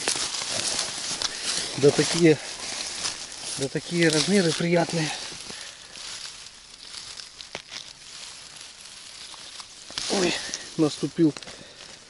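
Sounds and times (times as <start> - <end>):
plant stems snapping: 0.0 - 11.9
dry grass rustling: 0.0 - 12.0.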